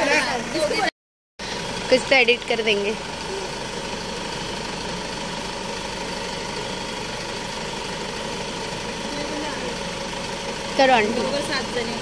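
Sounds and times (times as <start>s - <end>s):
suv engine idling: 0.0s - 12.0s.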